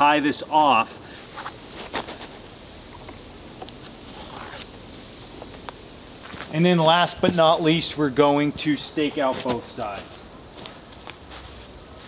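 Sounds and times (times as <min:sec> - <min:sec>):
cord rustling and scraping: 0:01.2 - 0:04.8.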